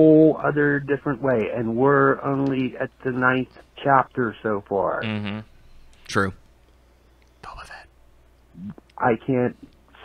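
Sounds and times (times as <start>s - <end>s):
person whispering: 5.0s - 5.4s, 7.4s - 7.9s
low voiced sound: 5.0s - 5.5s, 6.1s - 6.4s.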